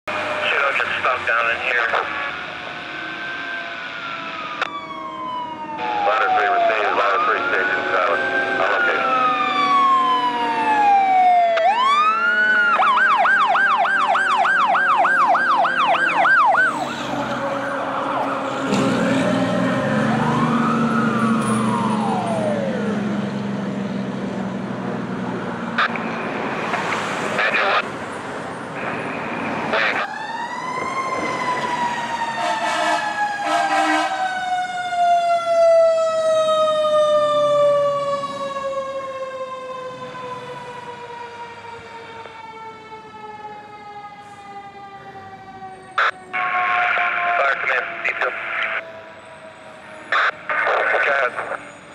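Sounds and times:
siren rising and falling: 0.1s - 24.1s, 28.8s - 51.9s.

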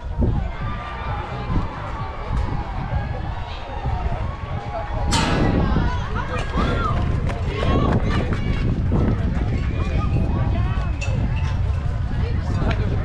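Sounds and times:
constant low rumble: 0.0s - 13.0s
spectators' voices and calls: 0.0s - 13.0s.

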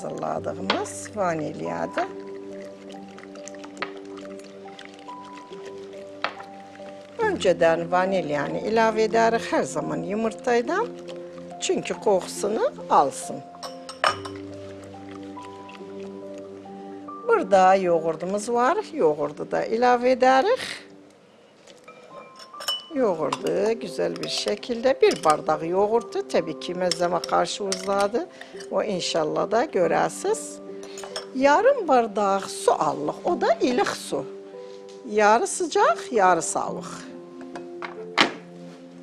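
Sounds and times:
soft background music: 0.0s - 39.0s
utensil clinking against glass bowl: 1.9s - 6.6s, 13.3s - 14.5s, 21.9s - 25.6s, 26.8s - 28.7s, 30.8s - 31.3s.

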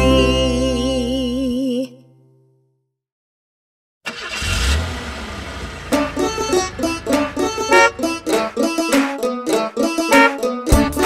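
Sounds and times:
plucked banjo music: 0.0s - 1.4s, 5.9s - 11.0s
engine rumble with hiss: 4.5s - 8.5s.

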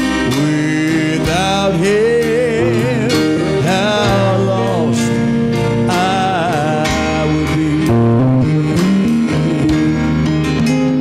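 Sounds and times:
bass guitar: 0.0s - 11.0s
drums: 0.0s - 11.0s
electric and acoustic guitars: 0.0s - 11.0s.

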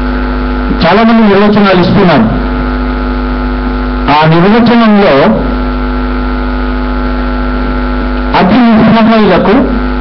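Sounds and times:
electrical mains hum: 0.0s - 10.0s
man speaking: 0.7s - 2.5s, 4.1s - 5.5s, 8.3s - 9.9s.

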